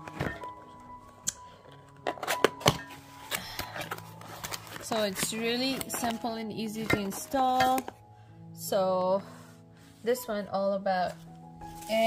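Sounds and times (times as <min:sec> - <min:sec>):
cardboard box being opened: 0:02.0 - 0:06.2.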